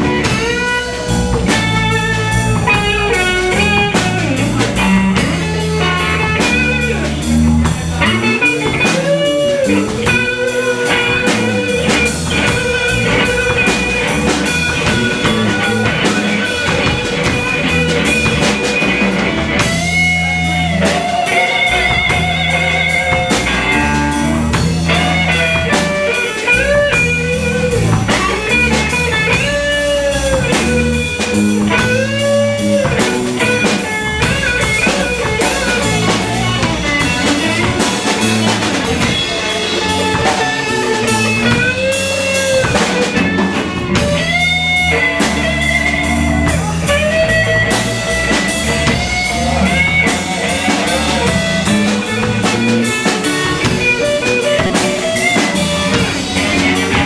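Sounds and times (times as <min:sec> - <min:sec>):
drum kit: 0:00.0 - 0:57.0
electric guitar solo with string bends: 0:00.0 - 0:57.0
low bass line: 0:00.0 - 0:57.0.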